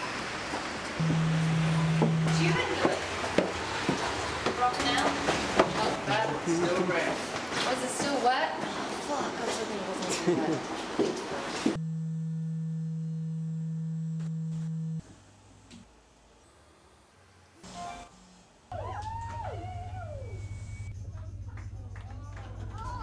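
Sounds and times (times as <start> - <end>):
steady electronic hum: 1.0 - 3.3, 11.8 - 15.4, 16.7 - 22.0
television tuning whistles over hum: 18.8 - 21.0.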